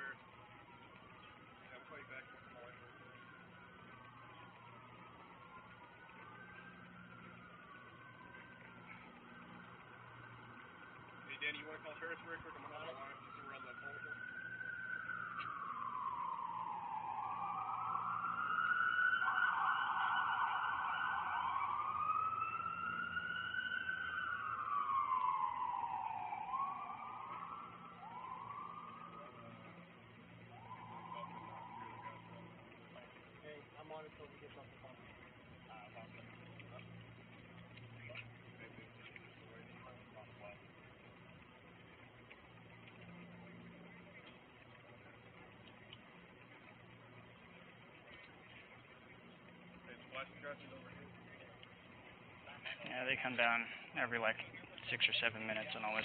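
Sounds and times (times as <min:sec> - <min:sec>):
emergency siren wailing: 0:00.0 - 0:56.0.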